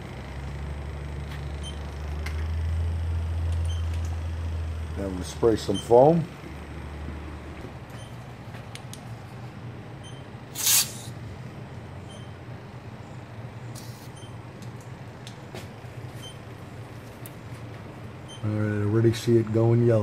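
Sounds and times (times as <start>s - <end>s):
steady low hum: 0.0s - 20.0s
aerosol can spraying hiss: 10.6s - 11.1s.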